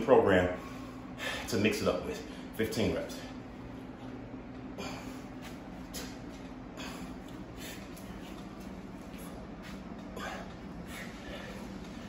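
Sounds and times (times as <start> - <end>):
steady low hum: 0.0 - 12.0
man breathing hard: 0.6 - 1.5, 4.7 - 8.3, 10.0 - 12.0.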